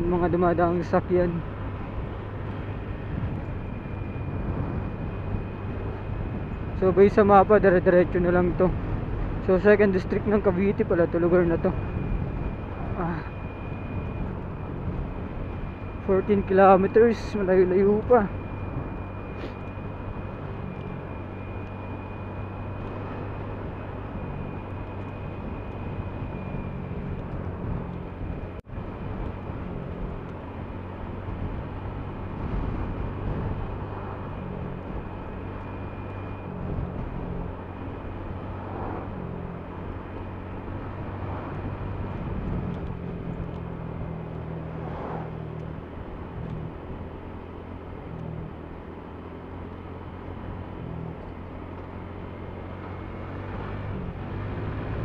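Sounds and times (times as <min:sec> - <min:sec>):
wind and road noise: 0:00.0 - 0:55.0.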